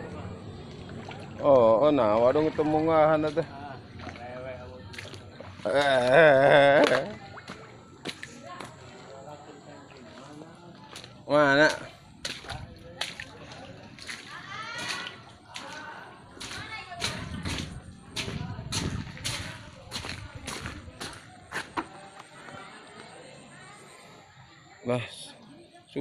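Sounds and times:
water sloshing: 0:00.0 - 0:24.3
splashes in a muddy puddle: 0:00.5 - 0:09.2, 0:09.8 - 0:22.0.

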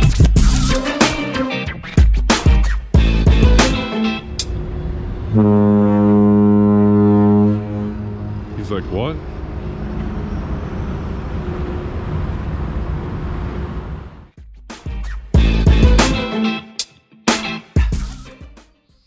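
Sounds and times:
ferry horn blast: 0:03.6 - 0:09.8
outdoor noise: 0:04.2 - 0:14.4.

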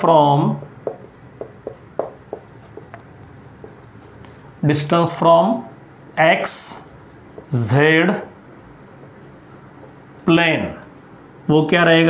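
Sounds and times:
marker writing on whiteboard: 0:00.4 - 0:04.2, 0:06.1 - 0:11.1.

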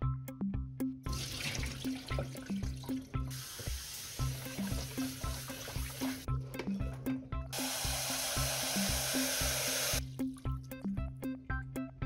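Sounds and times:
background music with steady beat: 0:00.0 - 0:12.0
tap water running into strainer: 0:01.1 - 0:06.3, 0:07.6 - 0:10.0.

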